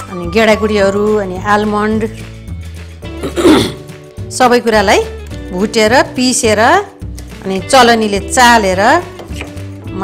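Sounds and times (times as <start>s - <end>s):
soft background music: 0.0s - 10.0s
person clearing throat: 3.2s - 3.9s.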